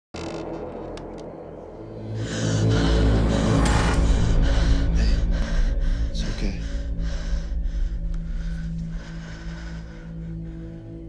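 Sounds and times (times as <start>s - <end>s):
horror score with low drone: 0.2s - 11.0s
breathy strokes: 2.0s - 11.0s.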